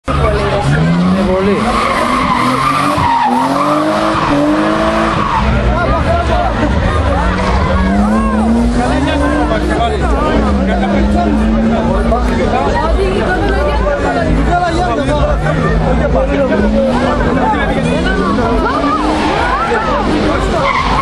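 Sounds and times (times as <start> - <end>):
car engine revving hard: 0.1 - 21.0
tyres squealing: 0.2 - 10.7, 16.8 - 21.0.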